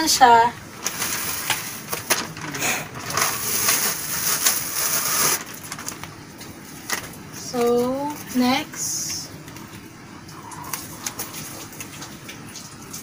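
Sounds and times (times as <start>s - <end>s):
backing paper peeling: 0.8s - 6.2s.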